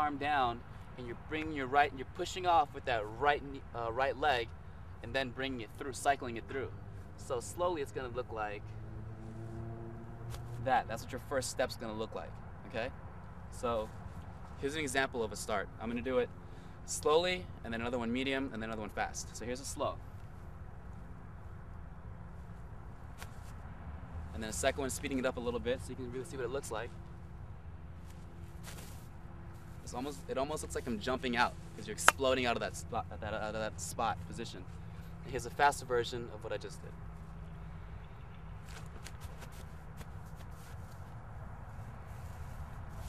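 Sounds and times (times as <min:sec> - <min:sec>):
low outdoor rumble: 0:00.0 - 0:43.0
running footfalls on grass: 0:28.0 - 0:29.9, 0:38.6 - 0:41.2.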